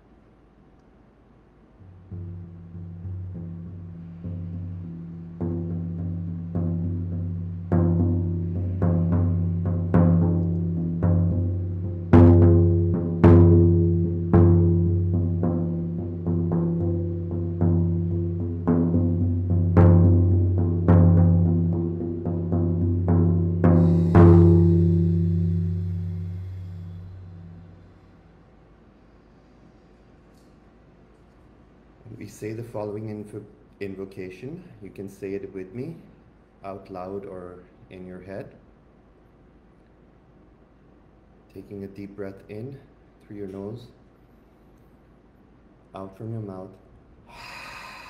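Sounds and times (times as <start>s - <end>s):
frame drum booming: 1.8s - 28.1s.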